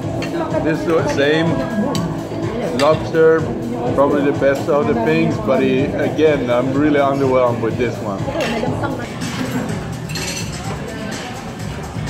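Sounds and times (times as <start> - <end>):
music playing: 0.0 - 12.0
tableware clinking: 2.7 - 3.1, 8.4 - 10.8.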